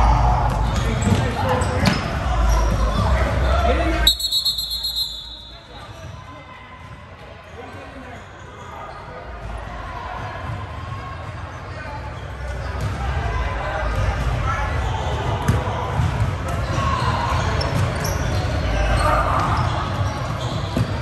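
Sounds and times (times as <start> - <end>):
voices in a gym: 0.0 - 21.0.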